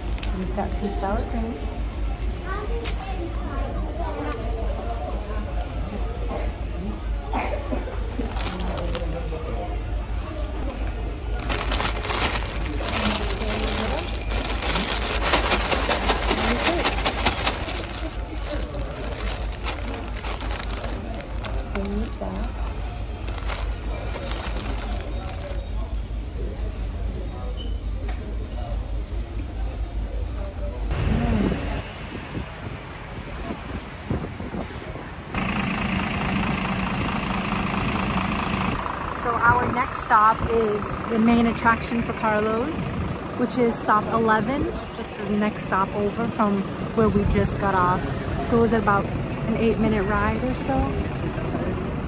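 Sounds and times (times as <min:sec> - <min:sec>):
paper crinkling: 0:11.3 - 0:26.0
low hum: 0:30.7 - 0:42.0.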